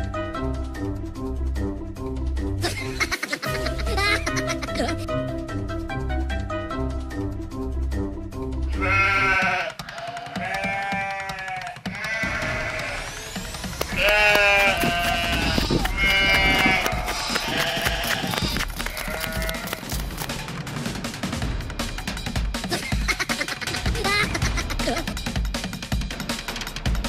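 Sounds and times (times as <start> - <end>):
music: 0.0 - 27.0
comedic bleating cries: 8.7 - 13.2, 13.8 - 19.8.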